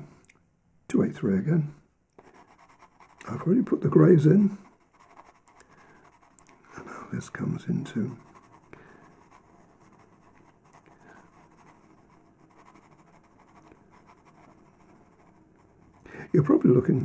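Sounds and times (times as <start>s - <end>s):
pencil scratching on paper: 2.2s - 6.8s, 7.9s - 17.0s.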